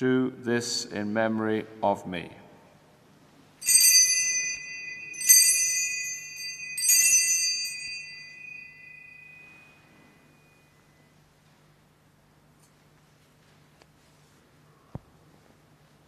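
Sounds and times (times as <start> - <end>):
altar bells ringing: 3.6 - 10.9.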